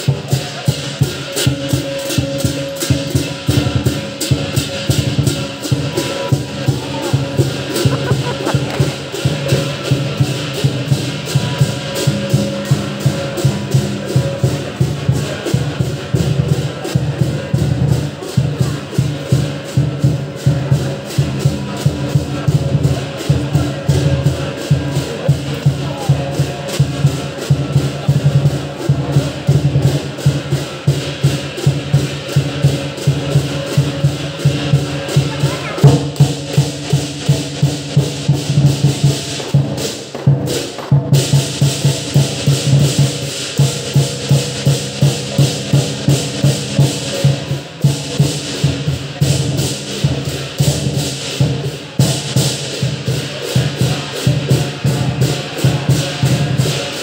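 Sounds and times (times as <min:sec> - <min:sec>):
cymbals clashing: 0:00.0 - 0:57.0
drum beaten in fast rhythm: 0:00.0 - 0:57.0.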